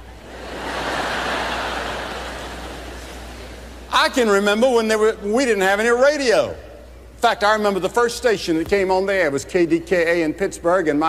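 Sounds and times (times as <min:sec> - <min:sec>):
audience laughing: 0:00.2 - 0:03.9.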